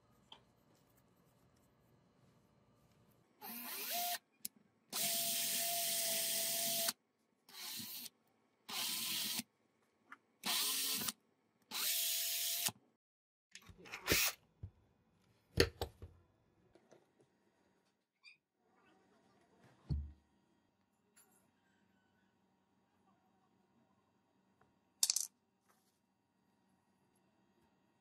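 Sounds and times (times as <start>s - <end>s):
cordless drill motor spinning: 3.4s - 4.2s, 8.7s - 9.4s.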